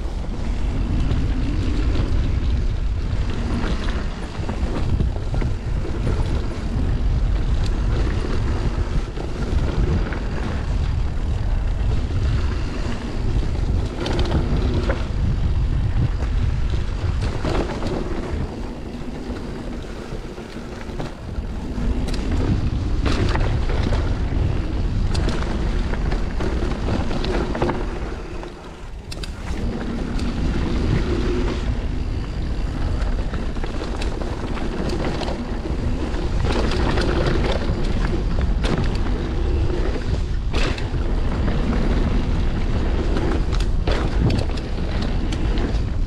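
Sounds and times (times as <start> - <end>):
rumble of bike tyres: 0.0 - 46.0
wind rushing over microphone: 0.0 - 46.0.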